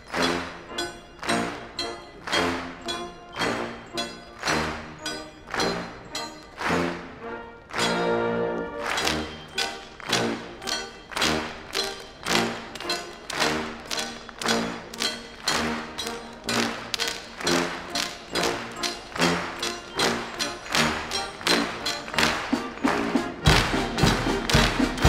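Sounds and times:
military brass band playing: 0.0 - 25.0
sharp percussive strikes: 0.0 - 25.0.

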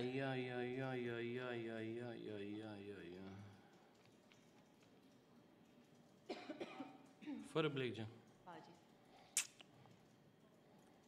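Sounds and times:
woman coughing: 6.3 - 7.5.

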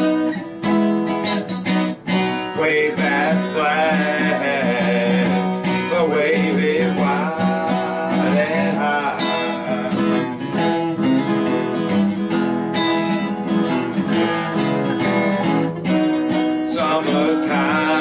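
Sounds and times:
acoustic guitars strumming chords: 0.0 - 18.0.

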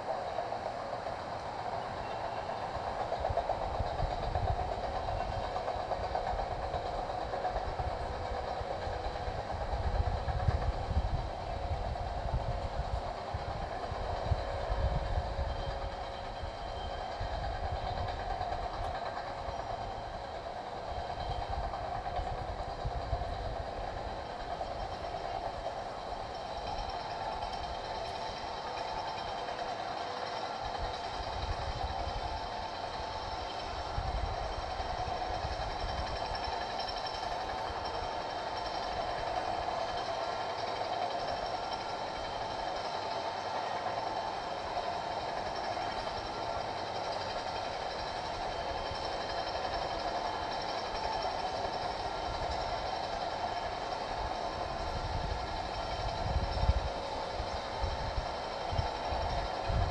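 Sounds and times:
mechanical hum: 0.0 - 59.9.

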